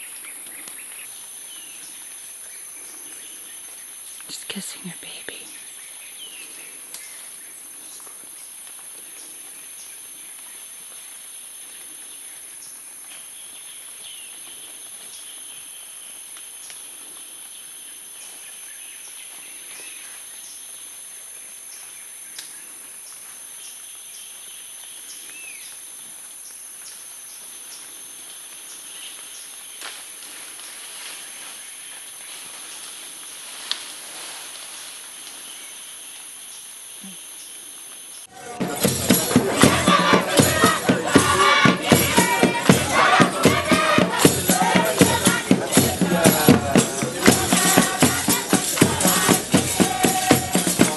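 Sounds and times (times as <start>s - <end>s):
faint clicks and snaps: 22.3s - 22.6s.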